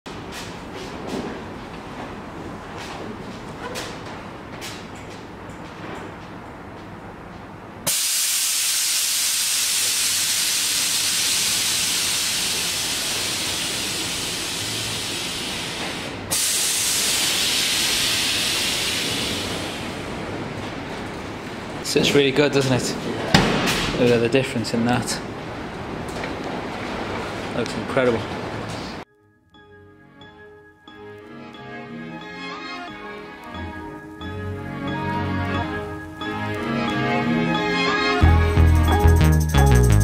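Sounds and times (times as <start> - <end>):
air suspension hissing: 7.9 - 20.1.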